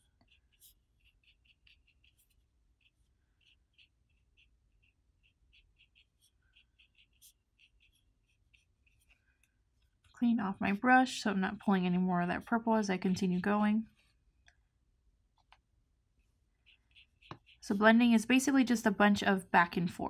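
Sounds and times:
paintbrush ticking on paper: 0.0s - 14.6s, 16.2s - 18.3s.

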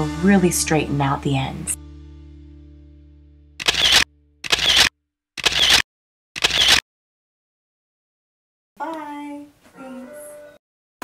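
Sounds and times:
background music chord: 0.0s - 4.4s
camera shutter snaps: 3.6s - 5.8s, 6.4s - 6.8s.

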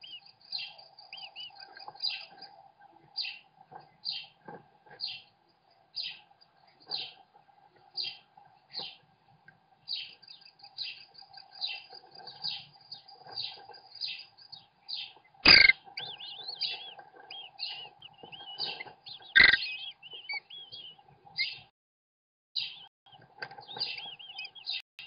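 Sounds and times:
bird nestlings begging calls: 10.0s - 21.6s, 23.6s - 24.8s.

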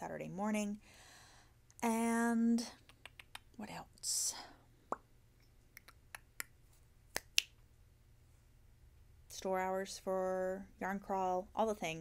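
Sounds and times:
finger clicks: 2.8s - 3.5s, 5.7s - 7.6s.

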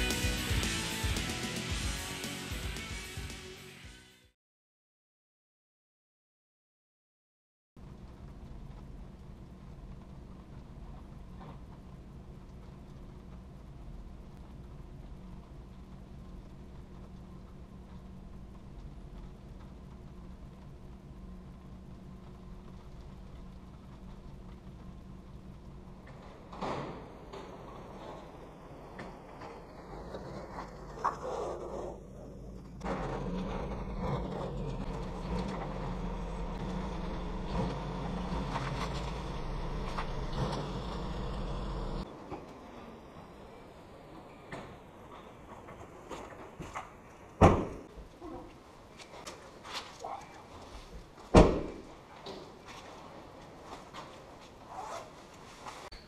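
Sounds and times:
road hum: 7.8s - 54.9s
truck engine running: 32.1s - 42.1s
loud thump: 47.4s - 47.8s, 51.3s - 51.9s.

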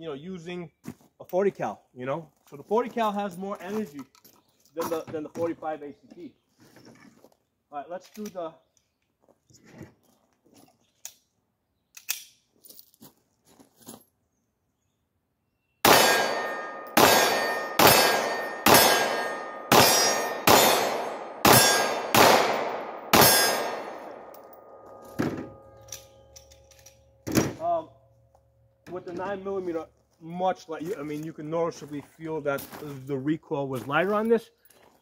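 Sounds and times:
pistol shots ringing: 15.8s - 27.2s.

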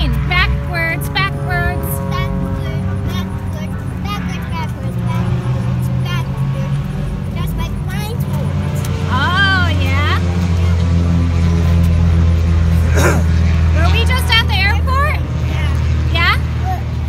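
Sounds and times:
vehicle engine drone: 0.0s - 17.0s
child's voice: 1.7s - 10.9s, 16.6s - 17.0s.

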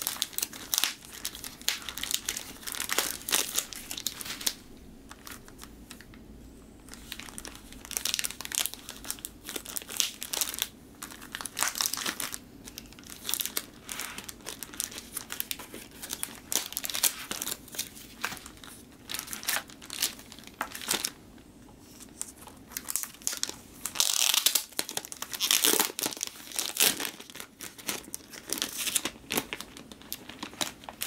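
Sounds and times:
plastic sleeve crinkling: 0.0s - 6.2s, 6.8s - 21.2s, 21.8s - 31.0s.

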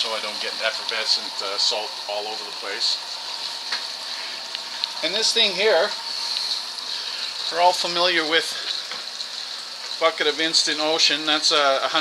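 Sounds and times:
protein skimmer fizzing hiss: 0.0s - 12.0s.

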